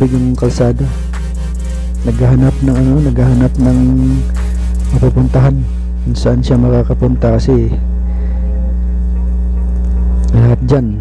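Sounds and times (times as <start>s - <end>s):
minibus engine drone: 0.0s - 11.0s.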